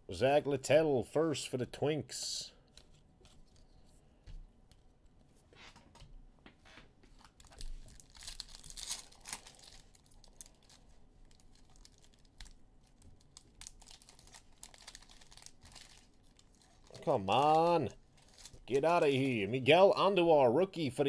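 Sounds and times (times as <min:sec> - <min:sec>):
foil wrapper crinkling: 0:07.1 - 0:19.5.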